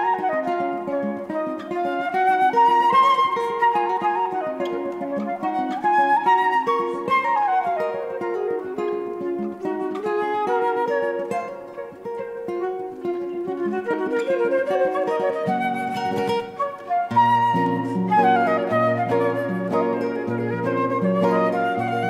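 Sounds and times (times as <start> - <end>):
flute melody: 0.0 - 22.0
plucked nylon-string guitar: 0.0 - 22.0.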